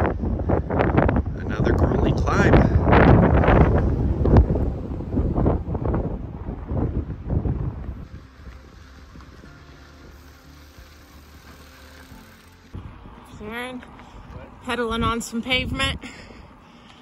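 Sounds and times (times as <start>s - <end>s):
wind buffeting microphone: 0.0s - 16.8s.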